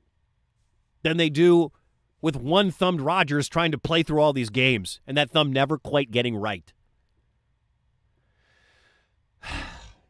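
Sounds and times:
man breathing into microphone: 0:08.2 - 0:10.0.

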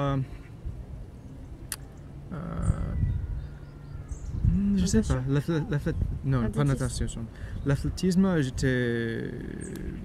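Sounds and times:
low steady background rumble: 0:00.0 - 0:10.0.

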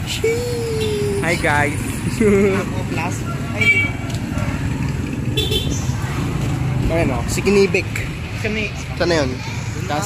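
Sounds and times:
street traffic rumble: 0:00.0 - 0:10.0
young people talking and exclaiming: 0:00.0 - 0:10.0.

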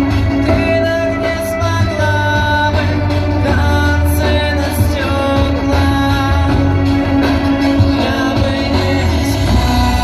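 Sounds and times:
instrumental music with bass: 0:00.0 - 0:10.0.

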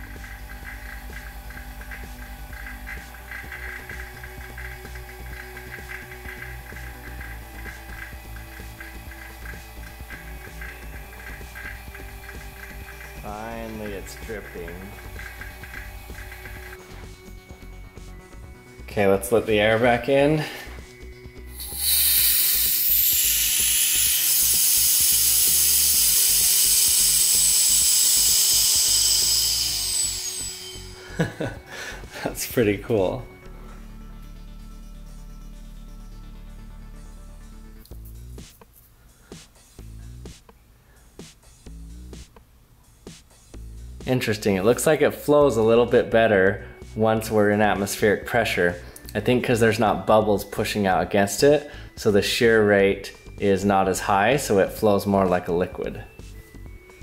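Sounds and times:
vacuum pump throbbing: 0:00.0 - 0:19.0, 0:20.7 - 0:32.9
air hissing into vacuum chamber: 0:21.5 - 0:32.2.

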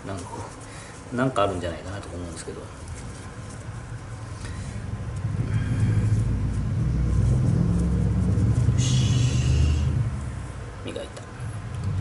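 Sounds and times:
motor vehicle passing: 0:02.8 - 0:12.0.

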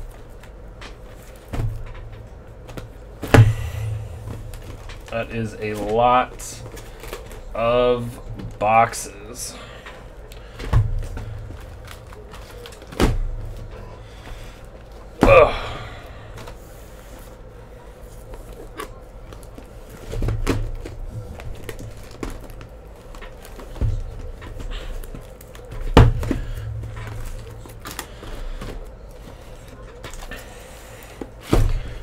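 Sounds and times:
boxes thudding on a stack: 0:01.2 - 0:07.5, 0:10.5 - 0:16.6, 0:20.0 - 0:30.3, 0:31.2 - 0:32.0.

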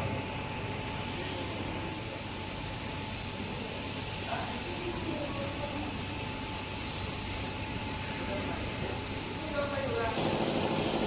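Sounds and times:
faint machine whine and hiss: 0:00.0 - 0:11.0
mixing machine humming: 0:03.5 - 0:11.0.

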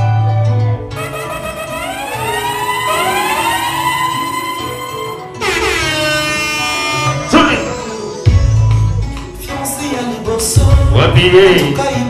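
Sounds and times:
dance music: 0:00.0 - 0:12.0
horn blast sliding down: 0:00.8 - 0:07.8
rising siren-like sweeps: 0:01.0 - 0:07.3.

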